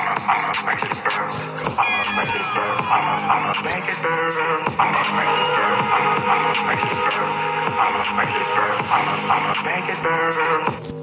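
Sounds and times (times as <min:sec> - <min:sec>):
electronic horror loop music: 0:00.0 - 0:11.0.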